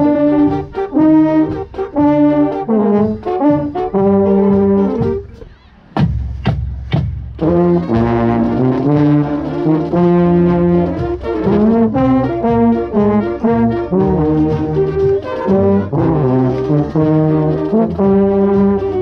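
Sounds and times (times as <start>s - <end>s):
trombone playing: 0.0s - 5.7s, 7.3s - 19.0s
marching band brass playing: 0.0s - 19.0s.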